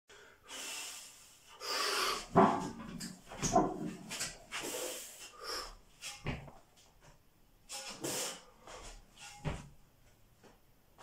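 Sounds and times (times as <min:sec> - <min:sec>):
man breathing forcefully: 0:00.1 - 0:02.7.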